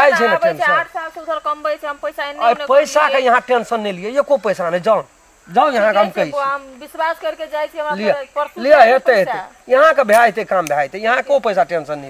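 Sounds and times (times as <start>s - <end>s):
person talking: 0.0s - 1.0s.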